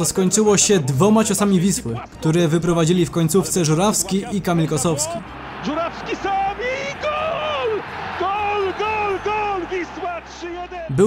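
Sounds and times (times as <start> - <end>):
excited commentator shouting: 0.0 - 11.0
stadium crowd noise: 3.4 - 11.0.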